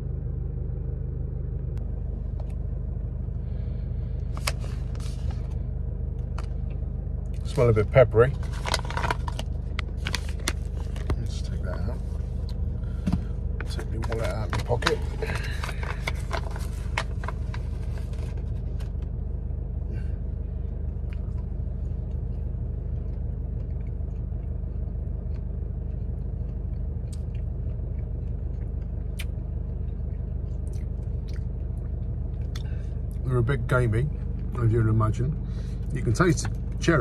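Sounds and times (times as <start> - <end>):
car engine idling: 0.0 - 37.0
plastic packet crinkling: 8.3 - 11.4, 13.6 - 18.4
quiet chewing: 20.9 - 33.2.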